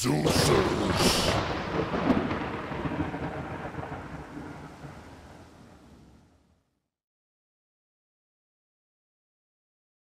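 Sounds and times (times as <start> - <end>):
rumbling thunder: 0.3 - 6.4.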